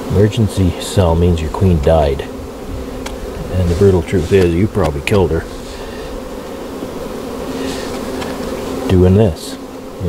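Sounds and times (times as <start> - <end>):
honeybees buzzing: 0.0 - 10.0
hive tool tapping wood: 2.5 - 8.9.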